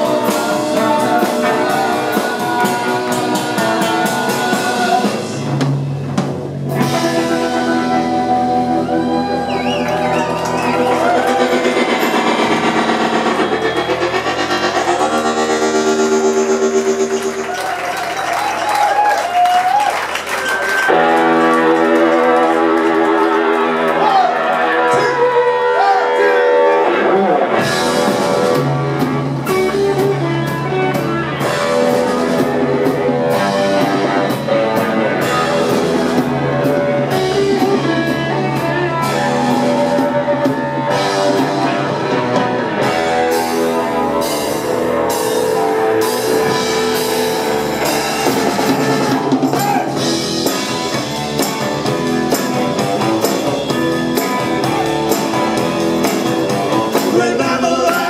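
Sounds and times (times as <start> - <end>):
keyboard chords: 0.0 - 19.0, 20.8 - 58.0
drum kit beat: 0.0 - 23.7, 27.6 - 58.0
electric guitar: 0.0 - 58.0.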